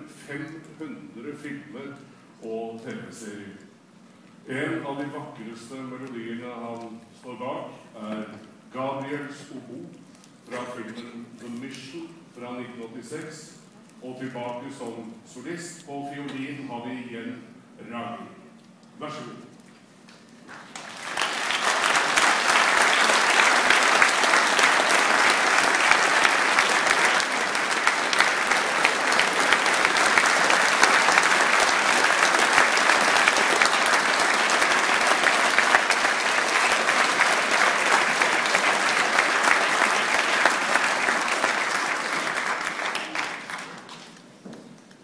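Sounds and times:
audience applauding: 0:20.4 - 0:44.3.

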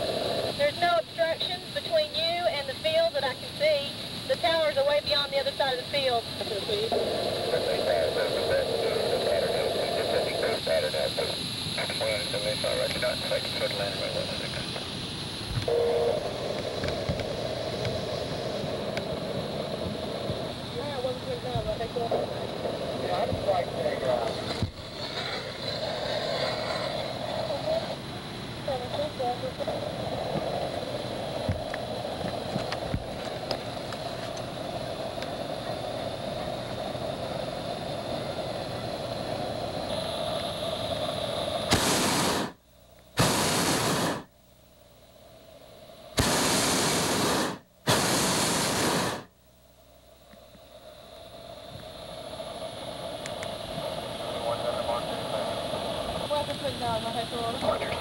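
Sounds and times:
propane burner blasts: 0:00.0 - 0:42.6, 0:43.2 - 0:44.3, 0:46.0 - 0:49.3, 0:50.7 - 0:58.0
faint voices: 0:00.6 - 0:14.9, 0:26.9 - 0:30.6, 0:34.4 - 0:40.6, 0:53.6 - 0:58.0.

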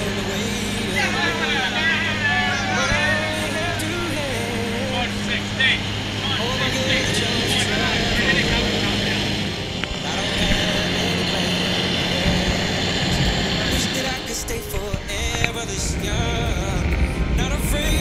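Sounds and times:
men shouting: 0:00.0 - 0:15.2
propeller plane engine droning: 0:00.0 - 0:18.0.

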